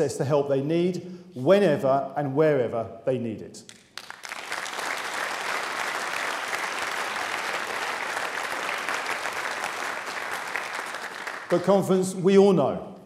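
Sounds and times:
audience applauding: 0:03.7 - 0:11.7.

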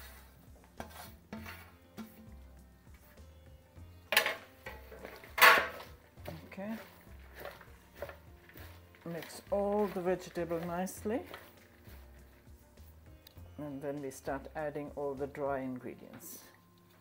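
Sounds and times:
scraping herbs off tray: 0:00.0 - 0:02.1, 0:04.2 - 0:13.0
metal tray clattering on counter: 0:04.1 - 0:05.9
vegetables tossed in plastic bowl: 0:04.2 - 0:12.6.

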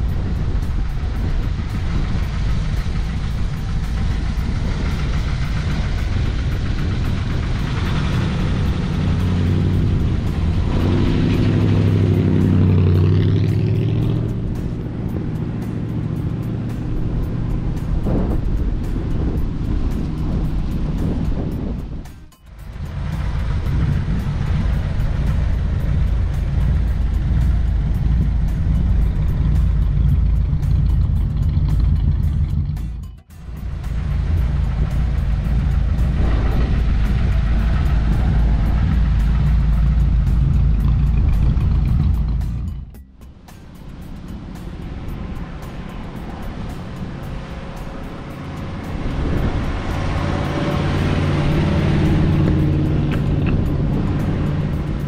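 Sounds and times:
car engine rumbling: 0:00.0 - 0:55.0.

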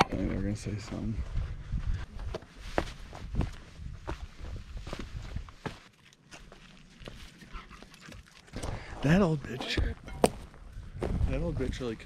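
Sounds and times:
footsteps crunching over rocks: 0:00.2 - 0:11.9.

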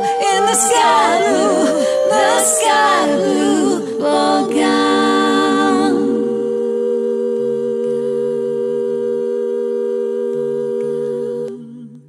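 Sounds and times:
lower voice singing: 0:00.0 - 0:12.0
voices singing in harmony: 0:00.0 - 0:12.0.

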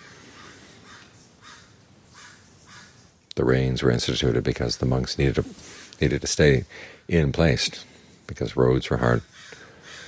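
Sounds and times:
faint bird calls: 0:00.0 - 0:03.4, 0:07.8 - 0:10.0.

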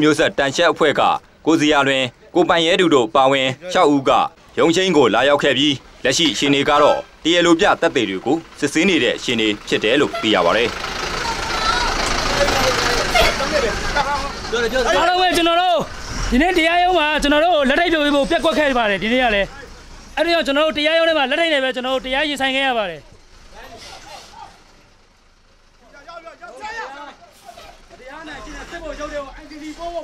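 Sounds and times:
man talking: 0:00.0 - 0:10.8, 0:12.3 - 0:24.4
people's voices: 0:00.0 - 0:30.0
street background noise: 0:00.0 - 0:30.0
truck engine rumbling: 0:00.0 - 0:30.0.

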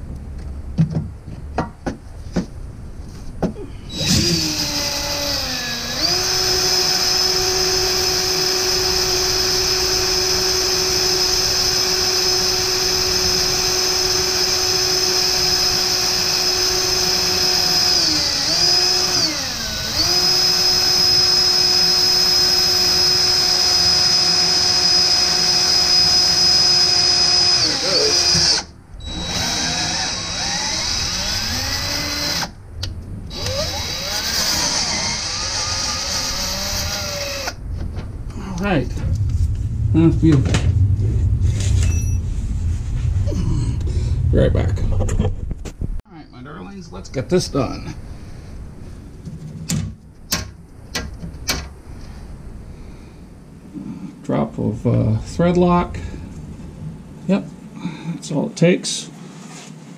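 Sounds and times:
cordless drill whining into steel: 0:03.9 - 0:32.6, 0:33.3 - 0:37.6.

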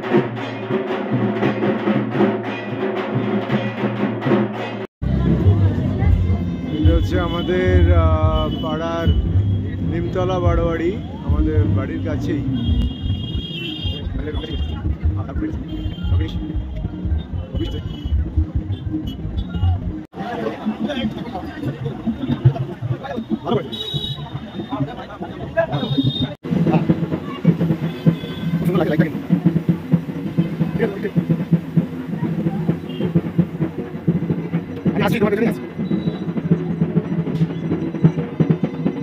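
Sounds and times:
rapid drumming: 0:00.0 - 0:39.0
people chattering: 0:05.0 - 0:13.0, 0:13.6 - 0:35.8.

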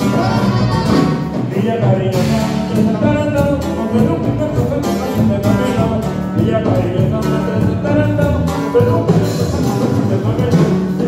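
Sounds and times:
live brass band dance music: 0:00.0 - 0:11.0.

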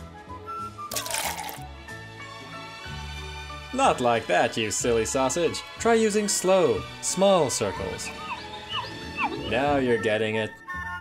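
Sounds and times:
light background music: 0:00.0 - 0:11.0
liquid splashing onto asphalt: 0:00.9 - 0:01.6.

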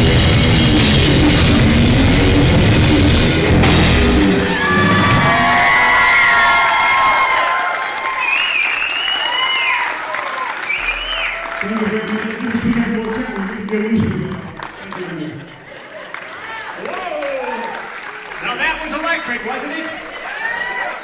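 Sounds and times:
rock band playing loud: 0:00.0 - 0:06.6.

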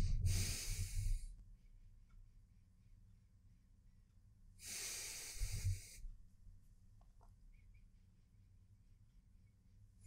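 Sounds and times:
person sniffing through the nose: 0:00.1 - 0:01.2, 0:04.6 - 0:06.0.

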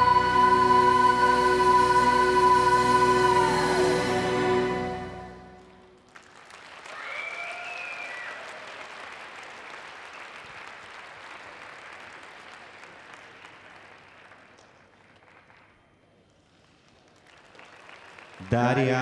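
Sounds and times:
arena audience applauding: 0:05.6 - 0:19.0
high call above clapping: 0:06.1 - 0:13.9.

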